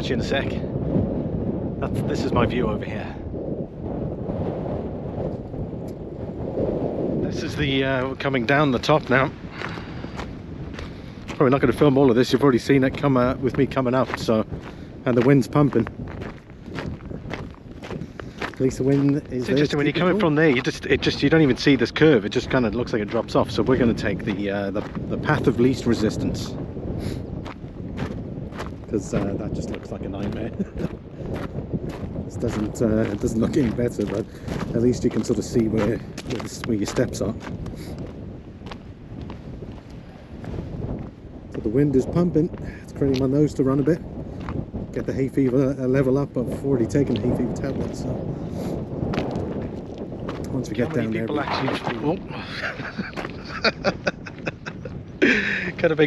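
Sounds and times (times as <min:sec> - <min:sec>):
wind buffeting the microphone: 0:00.0 - 0:56.0
footsteps on gravel: 0:08.3 - 0:41.7, 0:42.5 - 0:44.7, 0:48.7 - 0:55.9.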